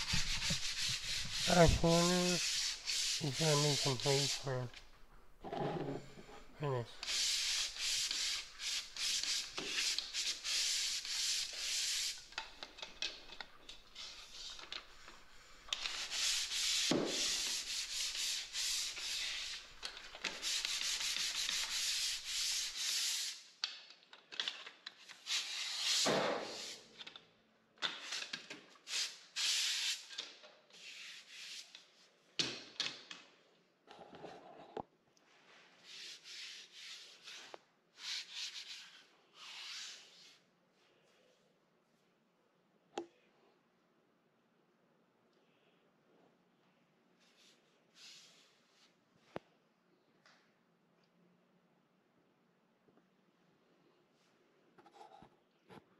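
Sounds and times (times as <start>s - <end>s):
sanding pad rubbing on wall: 0.0s - 4.5s, 7.0s - 12.3s, 15.7s - 23.4s, 25.2s - 26.9s, 30.8s - 31.7s, 35.8s - 40.4s.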